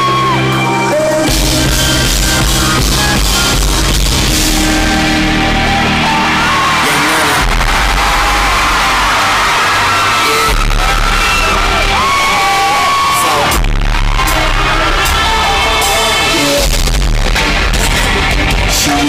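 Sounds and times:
deep bass notes: 0.0s - 19.0s
live hip-hop concert music: 0.0s - 19.0s.

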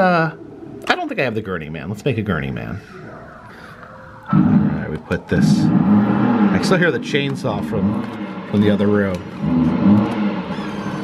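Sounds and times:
muffled chainsaw revving: 5.7s - 6.8s, 9.3s - 11.0s.

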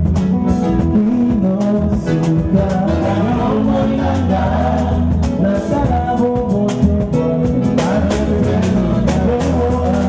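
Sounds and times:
low bass notes: 0.0s - 10.0s
men singing gospel in harmony: 0.9s - 10.0s.

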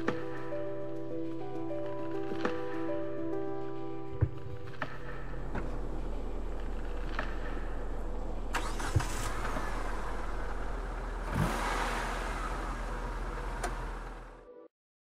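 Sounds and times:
car engine idling: 5.3s - 14.4s.

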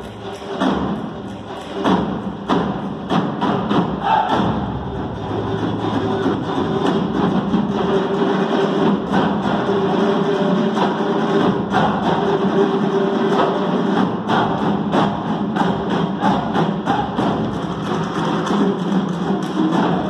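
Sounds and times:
hand drums playing fast rhythm: 0.0s - 20.0s.

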